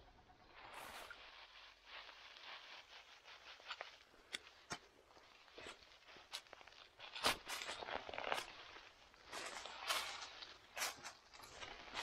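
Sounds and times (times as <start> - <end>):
footsteps in dry leaves: 0.5 - 12.0.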